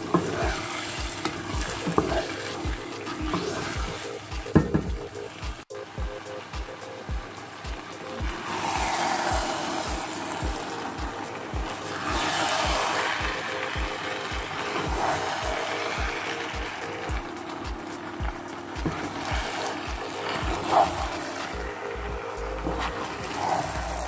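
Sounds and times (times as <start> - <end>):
sauce sizzling in frying pan: 0.0 - 6.5, 7.1 - 24.0
background music with steady beat: 0.0 - 24.0.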